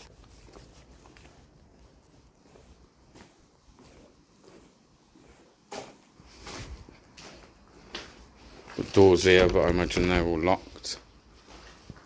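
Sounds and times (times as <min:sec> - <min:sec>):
footsteps scuffing on concrete: 0:00.0 - 0:12.0.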